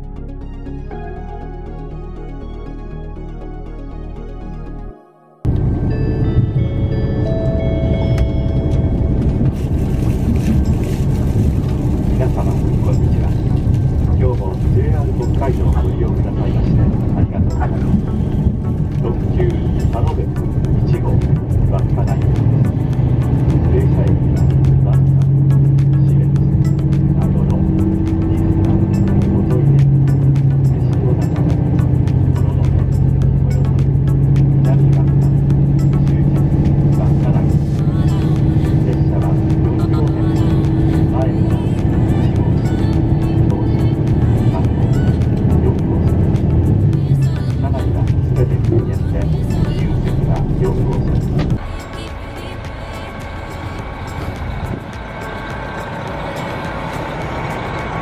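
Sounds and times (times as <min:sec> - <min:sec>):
diesel railcar engine drone: 0:05.4 - 0:58.0.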